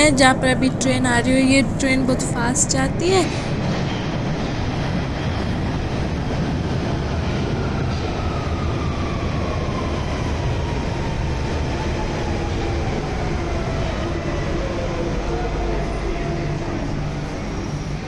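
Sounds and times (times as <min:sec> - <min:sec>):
train rumble passing: 0:00.0 - 0:18.0.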